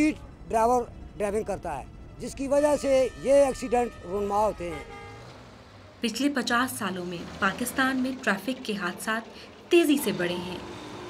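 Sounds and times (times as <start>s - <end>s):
man speaking: 0.0s - 4.9s
faint steady horn tone: 0.0s - 5.4s
faint road traffic: 0.0s - 11.0s.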